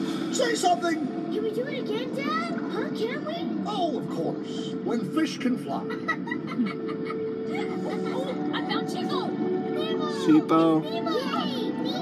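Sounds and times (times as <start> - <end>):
soundtrack music: 0.0 - 12.0.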